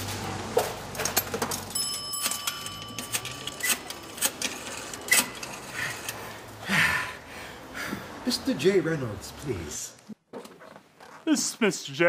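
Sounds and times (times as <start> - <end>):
payphone mechanical clicks and clunks: 0.8 - 6.2.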